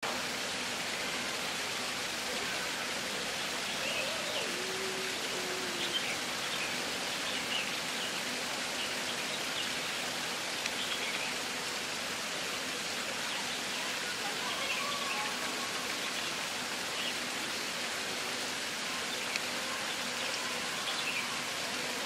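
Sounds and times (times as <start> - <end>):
running water hissing: 0.0 - 22.0.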